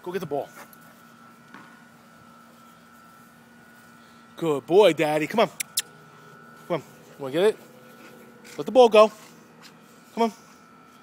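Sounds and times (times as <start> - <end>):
faint background hum: 0.0 - 11.0
thin high whine: 0.3 - 11.0.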